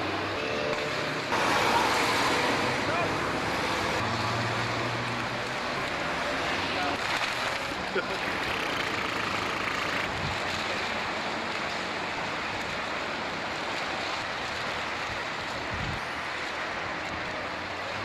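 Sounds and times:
road traffic rushing over bridge: 0.0 - 18.0.

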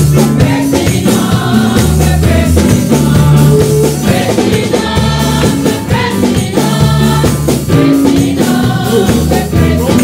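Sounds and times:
drum hits: 0.0 - 10.0
gospel choir singing: 0.0 - 10.0
live band playing: 0.0 - 10.0.

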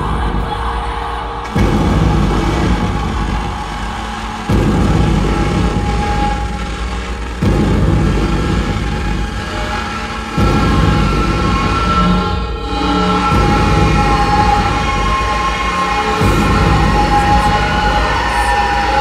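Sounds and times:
low rumbling electronic drone: 0.0 - 19.0.

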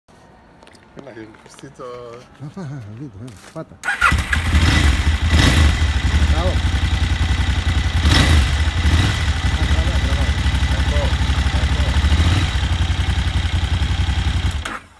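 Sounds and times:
motorcycle engine idling: 3.9 - 14.9.

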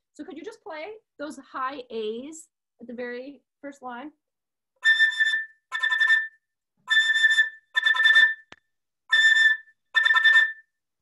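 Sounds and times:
flute fast tongued notes: 4.8 - 10.7.

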